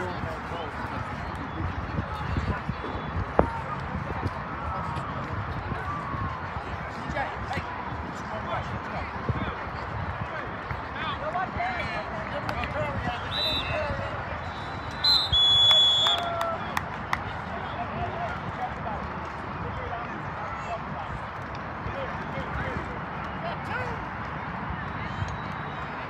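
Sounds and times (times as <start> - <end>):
referee's whistle: 13.2 - 16.3.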